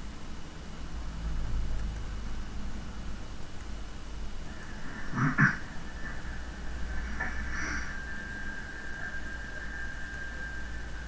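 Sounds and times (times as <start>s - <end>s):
faint high-pitched whine: 0.0s - 11.0s
low electrical hum: 0.0s - 11.0s.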